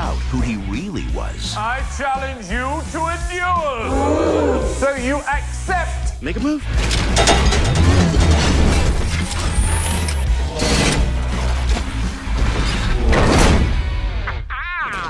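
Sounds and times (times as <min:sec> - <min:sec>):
robot mechanisms clanking and whirring: 0:06.8 - 0:13.9.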